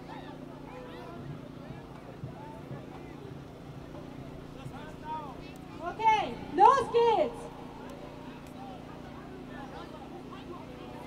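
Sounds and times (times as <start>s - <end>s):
city traffic hum: 0.0s - 11.0s
crowd talking quietly: 0.0s - 11.0s.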